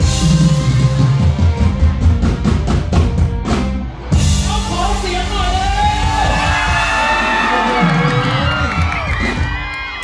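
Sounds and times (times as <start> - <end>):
live pop band music: 0.0 - 10.0
crowd whooping and cheering: 5.5 - 10.0.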